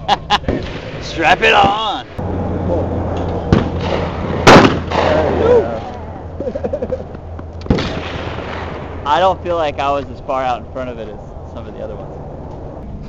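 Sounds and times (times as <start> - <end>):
voices reacting: 0.0 - 8.1, 9.0 - 12.2
loud shotgun blast: 0.5 - 2.0, 3.5 - 5.9, 7.6 - 9.8
sharp knocks: 3.2 - 5.2.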